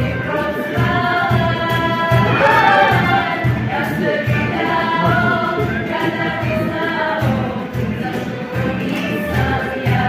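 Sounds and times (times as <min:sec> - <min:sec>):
young women singing together: 0:00.0 - 0:10.0
cajon beat: 0:00.8 - 0:10.0.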